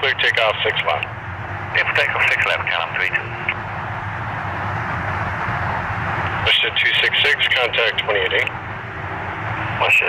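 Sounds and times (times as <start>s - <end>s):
jet engines rumbling and hissing: 0.0s - 10.0s.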